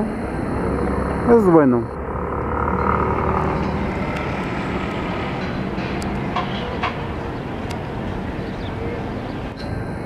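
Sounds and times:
low city rumble: 0.0s - 10.0s.

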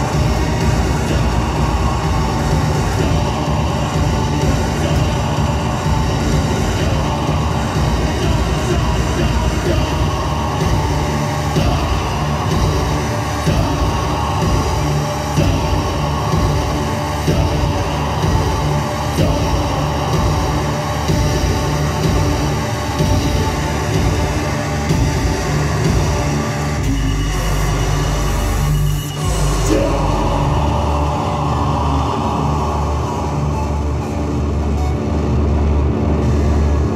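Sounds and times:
deep bass pulse: 0.0s - 36.9s
loud electronic music: 0.0s - 36.9s.

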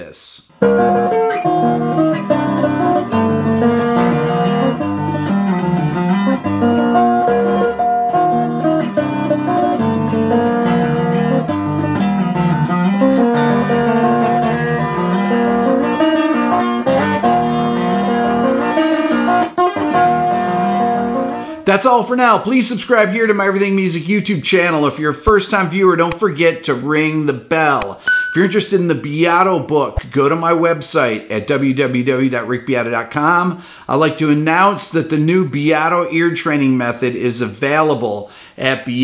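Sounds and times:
finger-picked electric guitar: 0.5s - 21.6s.

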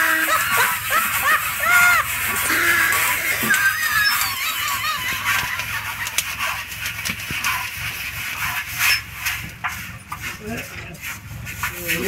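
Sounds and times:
sticks stirring rice in a pot: 0.0s - 12.0s.

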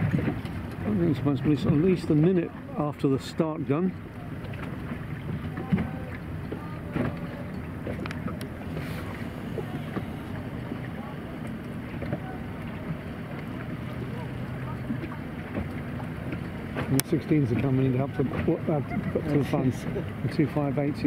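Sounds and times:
low steady hum: 0.0s - 21.0s
water washing around boat: 0.0s - 21.0s.

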